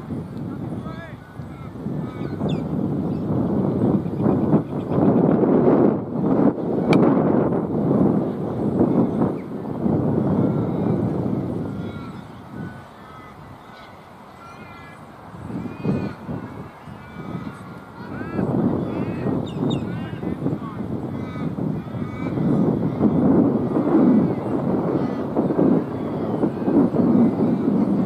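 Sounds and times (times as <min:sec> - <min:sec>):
wind rumbling on microphone: 0:00.0 - 0:28.0
short bird calls: 0:11.7 - 0:23.0.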